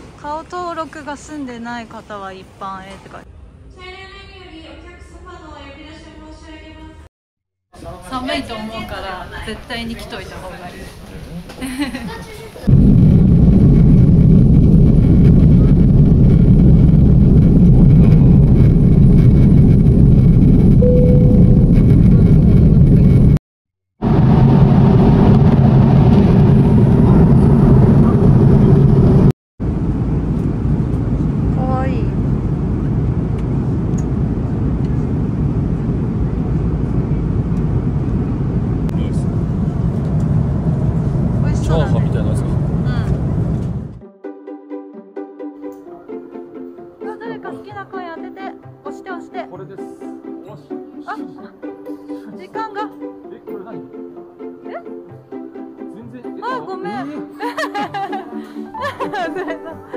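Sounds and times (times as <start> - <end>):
jet airliner cabin rumble: 8.7 - 23.4, 24.0 - 44.0.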